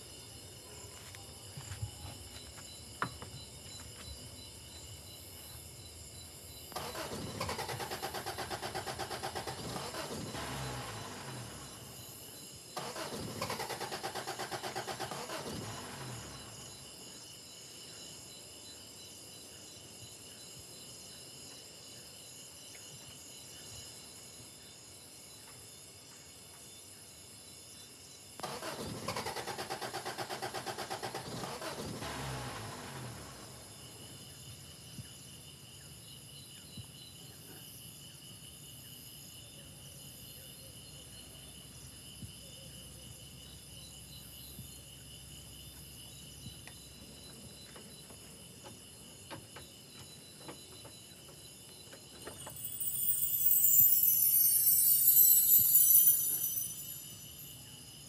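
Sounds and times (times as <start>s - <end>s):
crickets chirping: 0.0s - 58.0s
truck engine cranking: 6.7s - 11.8s, 12.8s - 16.4s, 28.4s - 33.3s.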